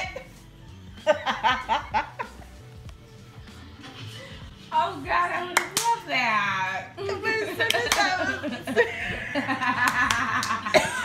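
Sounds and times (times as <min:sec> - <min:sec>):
sharp slaps: 0:05.6 - 0:06.0.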